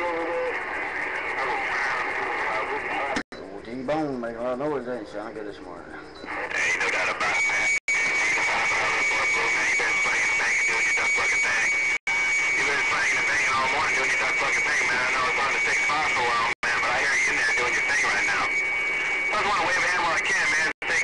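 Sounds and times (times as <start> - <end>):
radio static: 0.0 - 3.2, 5.0 - 21.0
garbled radio voices: 0.0 - 21.0.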